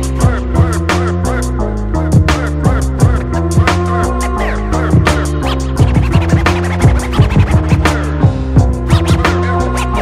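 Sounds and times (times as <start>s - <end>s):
hip hop beat: 0.0s - 10.0s
turntable scratching: 3.1s - 8.2s, 8.8s - 10.0s.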